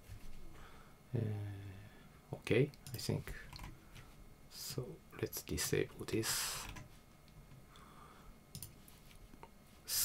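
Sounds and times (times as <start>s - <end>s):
computer mouse clicks: 8.5s - 8.8s.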